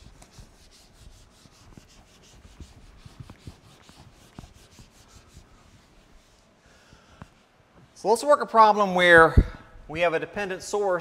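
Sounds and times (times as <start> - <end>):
eraser wiping whiteboard: 0.0 - 6.6.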